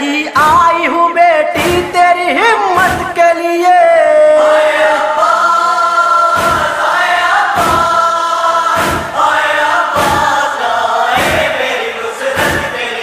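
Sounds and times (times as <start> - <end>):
low rhythmic thump: 1.6 - 2.2, 2.8 - 3.2, 6.3 - 9.3, 9.9 - 10.5, 11.1 - 11.8, 12.4 - 12.8
male chorus holding long notes: 3.8 - 13.0.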